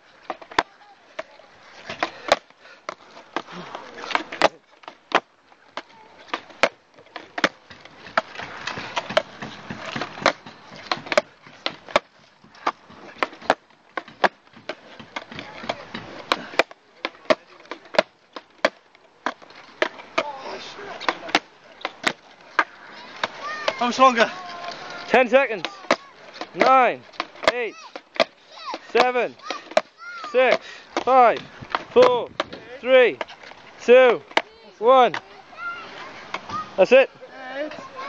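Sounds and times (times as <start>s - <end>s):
skateboard wheels rolling hiss: 0.0s - 38.0s
skateboard tail clack and landing: 0.2s - 35.4s.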